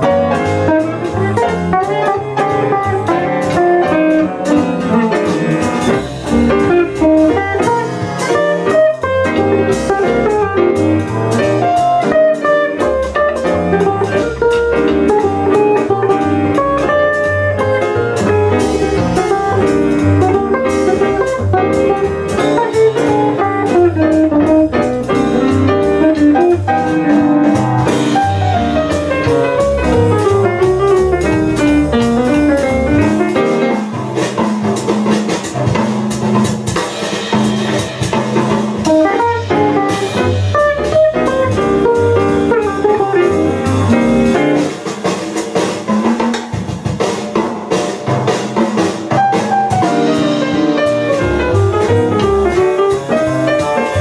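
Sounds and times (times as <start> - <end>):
jazz guitar and piano duo: 0.0 - 54.0.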